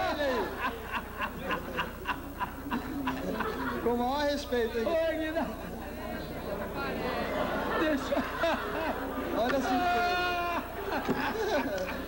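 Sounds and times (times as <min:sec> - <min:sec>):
man laughing heartily: 0:07.6 - 0:12.0.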